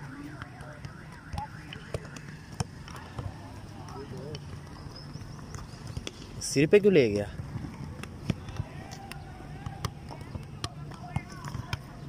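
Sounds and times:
outdoor background noise: 0.0s - 12.0s
ball knocking against head and foot: 0.4s - 4.7s, 7.4s - 12.0s.

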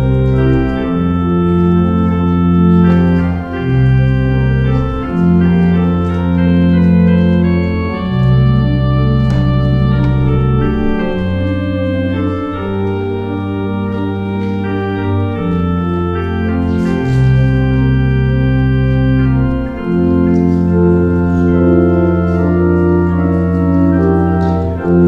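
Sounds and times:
church organ playing chords: 0.0s - 25.0s.

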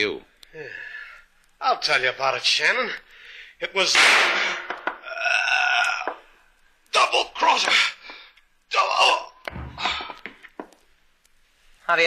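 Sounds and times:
man groaning: 5.0s - 6.2s, 8.8s - 10.1s.

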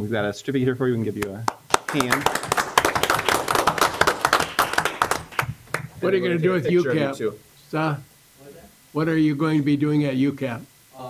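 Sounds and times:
group clapping: 1.2s - 6.2s.

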